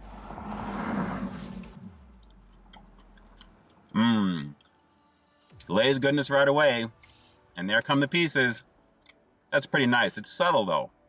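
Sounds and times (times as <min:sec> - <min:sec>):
chewing: 0:02.1 - 0:04.0.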